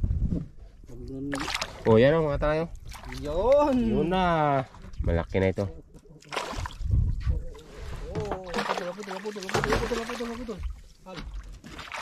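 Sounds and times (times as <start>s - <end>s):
water and handling noise on boat: 5.9s - 12.0s.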